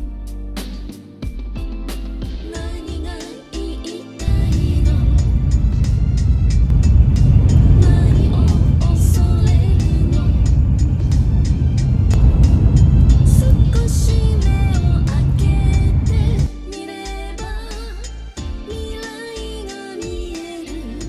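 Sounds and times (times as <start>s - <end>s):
background music: 0.0s - 21.0s
train rumbling: 4.3s - 16.5s.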